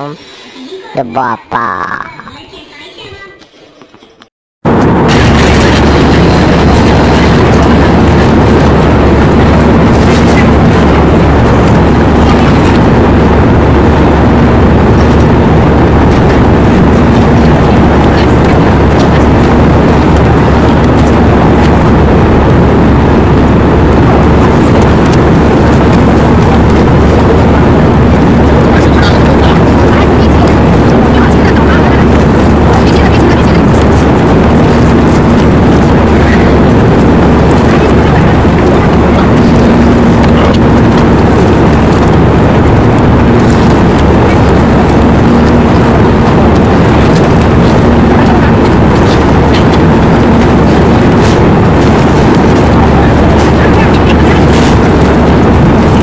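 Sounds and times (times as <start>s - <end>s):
distorted crowd din: 0.5s - 56.0s.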